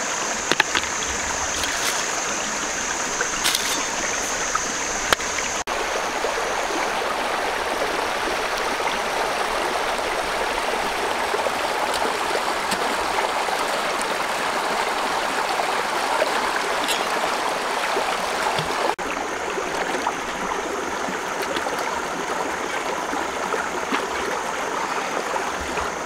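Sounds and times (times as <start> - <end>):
stream rushing over stones: 0.0 - 26.0.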